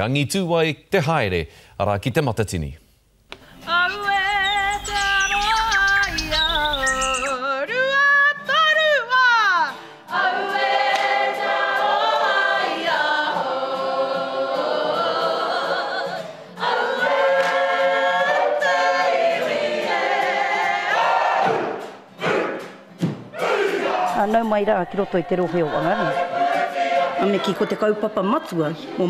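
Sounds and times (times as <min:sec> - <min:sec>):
group singing in unison: 0:10.0 - 0:29.0.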